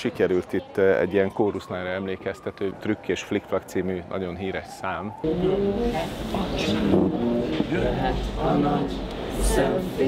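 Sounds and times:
group singing long held notes: 5.2 - 10.0.

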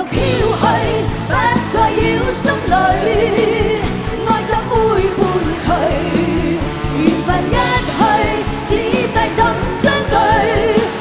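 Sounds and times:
drums and bass beat: 0.0 - 11.0
live pop band: 0.0 - 11.0
woman singing with vibrato: 0.0 - 11.0.

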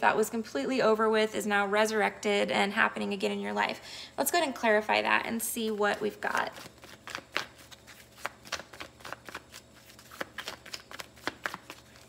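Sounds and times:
cards being shuffled: 6.3 - 12.0.

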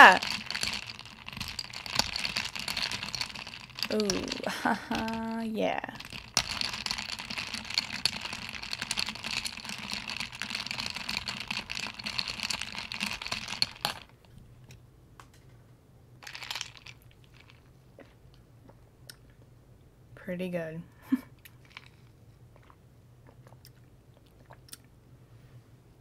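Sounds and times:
straw stirring ice in glass: 0.0 - 14.1, 16.2 - 17.6.

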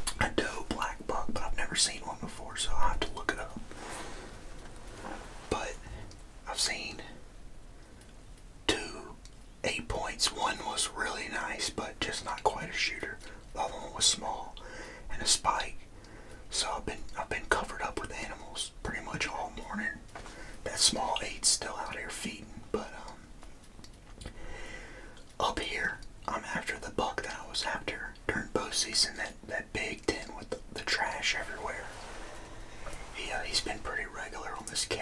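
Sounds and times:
man whispering: 0.0 - 4.0, 5.4 - 7.3, 8.7 - 23.3, 25.3 - 35.0.

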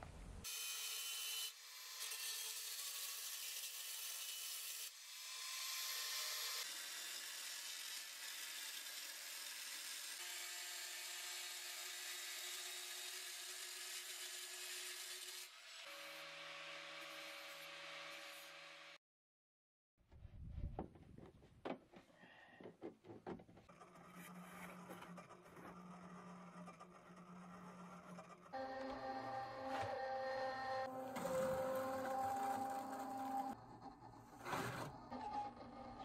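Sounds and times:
angle grinder cutting steel pipe: 23.9 - 36.0.

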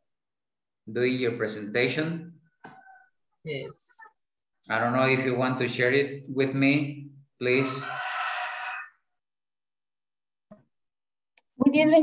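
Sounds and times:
person's voice over video call: 3.5 - 8.1.

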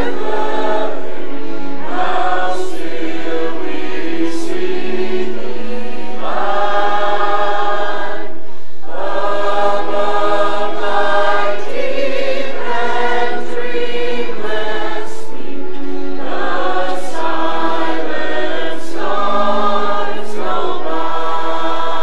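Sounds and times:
mixed choir singing in harmony: 0.0 - 22.0.

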